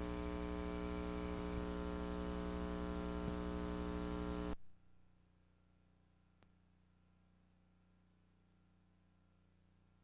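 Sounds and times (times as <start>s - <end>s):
electrical mains hum: 0.0s - 7.8s.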